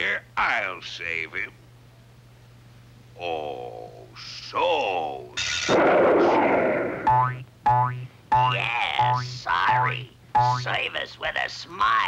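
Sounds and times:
springy boings: 5.4s - 10.8s.

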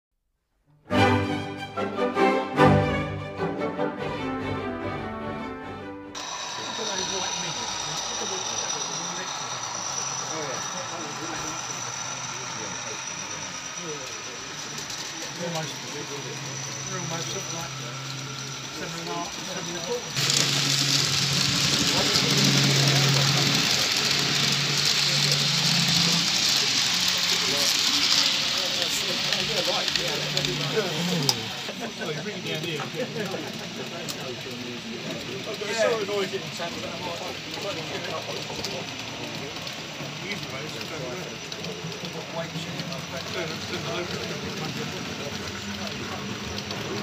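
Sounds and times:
people talking indistinctly: 0.9s - 47.0s
steady hiss: 6.2s - 33.4s.

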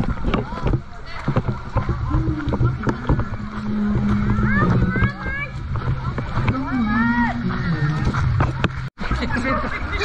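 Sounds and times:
people's voices: 0.0s - 10.0s
low-pitched drone: 1.8s - 8.9s.

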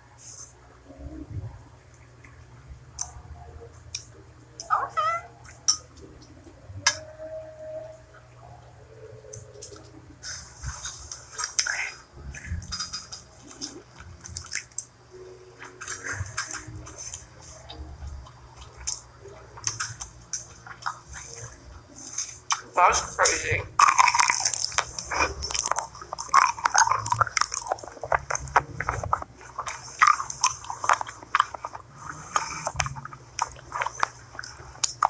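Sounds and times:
smacking crunching mouth sounds: 12.5s - 14.9s, 23.8s - 35.0s.

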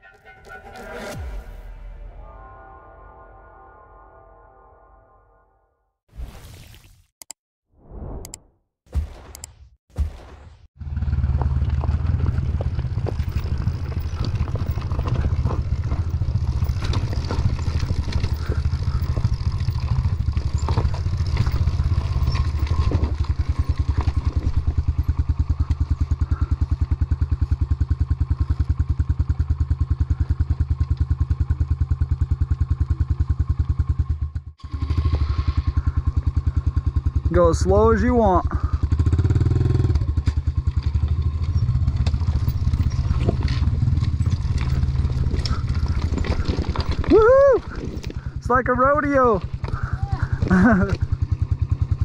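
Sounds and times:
rocks clattering under tyres: 11.2s - 25.3s, 40.8s - 48.4s, 49.4s - 51.2s.

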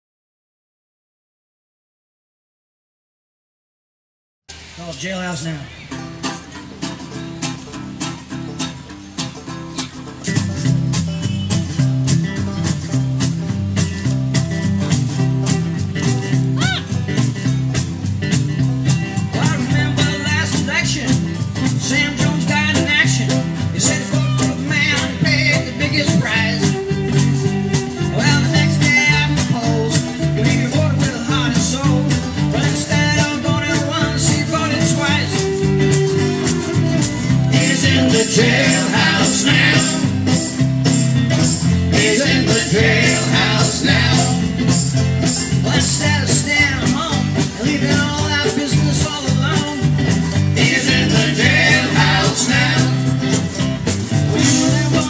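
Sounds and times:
jug band playing: 6.1s - 55.0s
walking bass: 6.1s - 55.0s.

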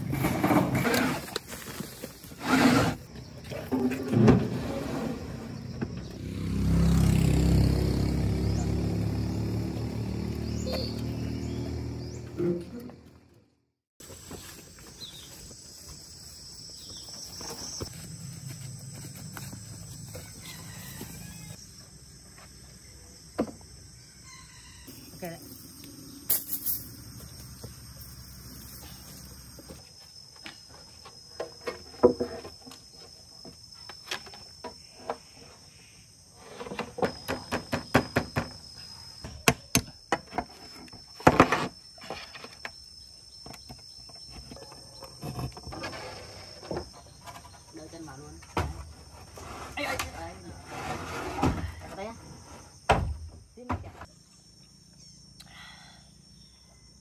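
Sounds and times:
high insect trill: 14.0s - 50.7s.

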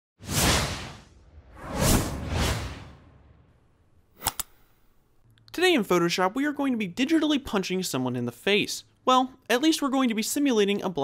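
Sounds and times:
whoosh sound effects: 0.2s - 3.6s.

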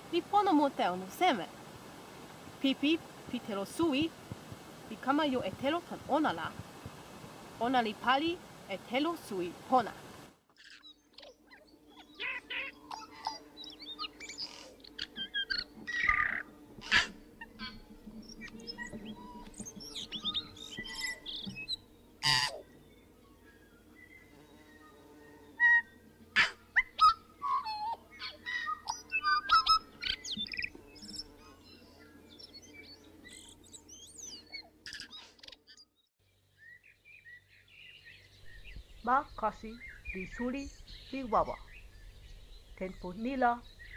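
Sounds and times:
birds chirping and whistling: 10.6s - 36.0s, 36.6s - 43.9s.

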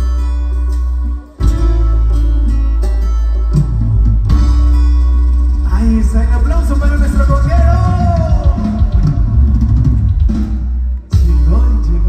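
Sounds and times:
heavy bass line: 0.0s - 12.0s
live band playing cumbia: 0.0s - 12.0s.

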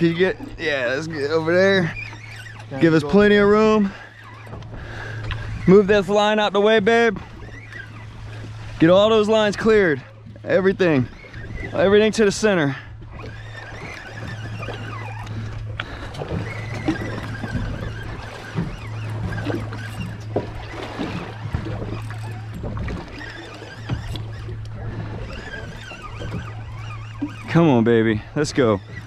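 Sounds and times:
outboard motor humming: 0.0s - 29.0s
water noise: 0.0s - 29.0s.

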